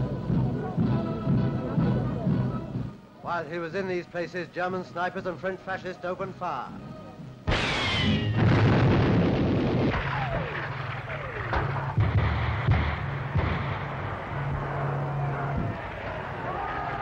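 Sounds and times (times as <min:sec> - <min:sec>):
gunshots: 0:07.5 - 0:16.9
loud burst of noise: 0:07.5 - 0:17.0.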